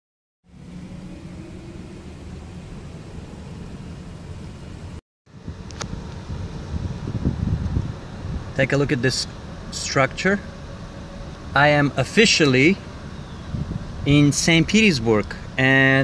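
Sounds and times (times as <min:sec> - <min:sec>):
low road traffic rumble: 0:00.4 - 0:16.0
click: 0:05.7 - 0:05.9.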